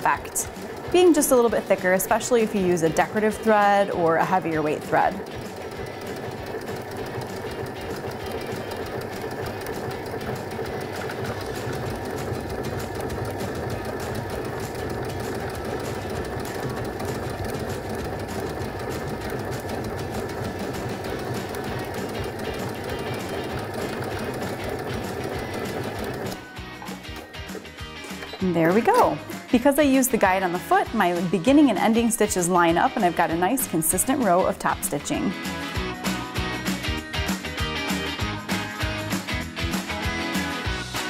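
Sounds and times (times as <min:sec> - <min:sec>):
sewing machine running: 0:00.0 - 0:41.0.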